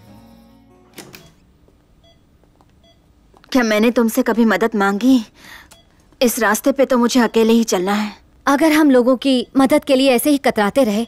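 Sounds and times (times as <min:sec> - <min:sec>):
faint electronic beeps: 0:02.0 - 0:03.1.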